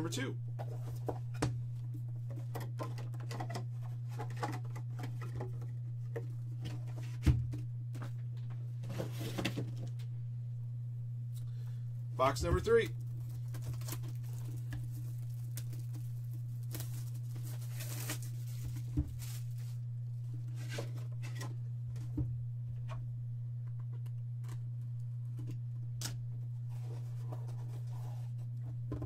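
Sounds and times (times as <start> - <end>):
steady low hum: 0.0 - 29.0
cellophane tearing and crinkling: 13.0 - 19.8.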